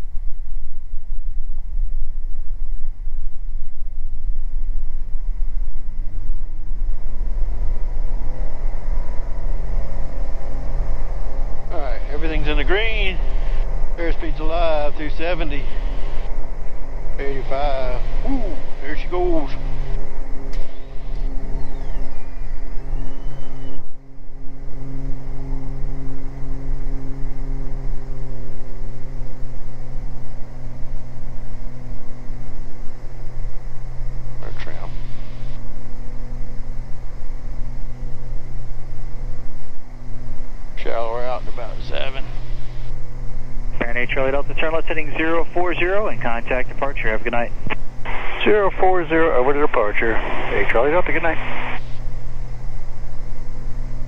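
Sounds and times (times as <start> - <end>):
aircraft engines droning: 0.0 - 54.0
faint gliding whine: 0.0 - 54.0.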